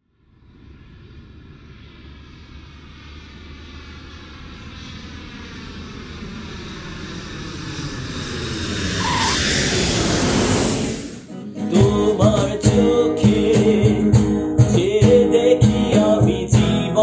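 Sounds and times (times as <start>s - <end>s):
faint falling whine: 0.0s - 11.3s
jet engines landing: 0.2s - 11.4s.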